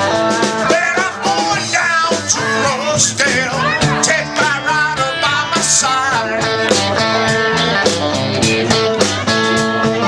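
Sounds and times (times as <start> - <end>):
bass guitar: 0.0 - 10.0
drum kit with cymbal hits: 0.0 - 10.0.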